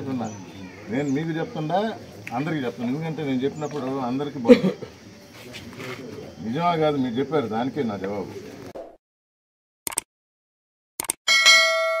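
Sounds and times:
sharp mouse clicks: 0:09.9 - 0:10.1, 0:11.0 - 0:11.2
notification bell ding: 0:11.3 - 0:12.0.

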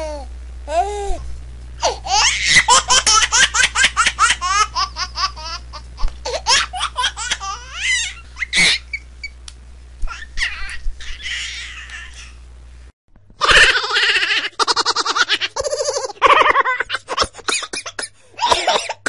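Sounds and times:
low steady hum: 0:00.0 - 0:19.0
baby laughing: 0:01.8 - 0:09.0, 0:10.0 - 0:12.4, 0:13.4 - 0:18.8.

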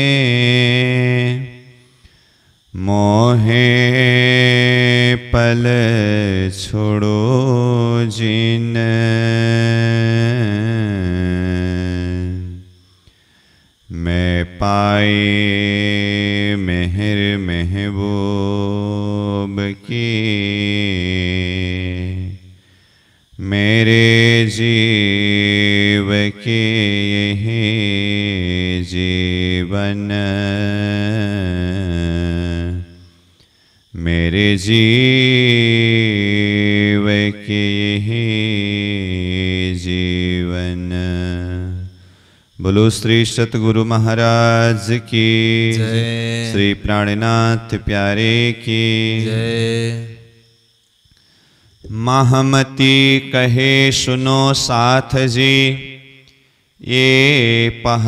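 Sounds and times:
man chanting: 0:00.0 - 0:02.0, 0:02.6 - 0:12.8, 0:13.9 - 0:22.6, 0:23.4 - 0:33.1, 0:33.9 - 0:50.4, 0:51.8 - 0:58.0.

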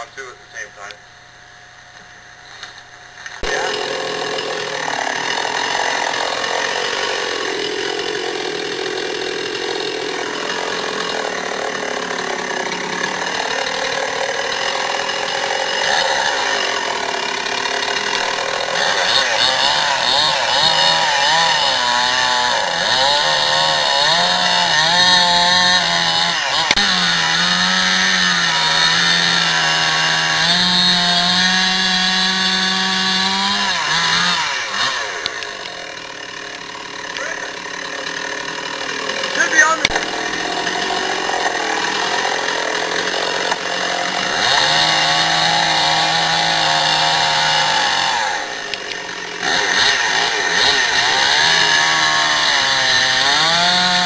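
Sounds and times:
chainsaw cutting wood: 0:00.0 - 0:54.0.

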